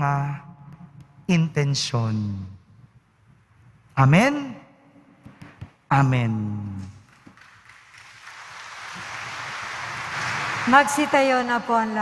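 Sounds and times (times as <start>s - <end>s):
congregation rustling and shuffling: 6.8s - 10.8s.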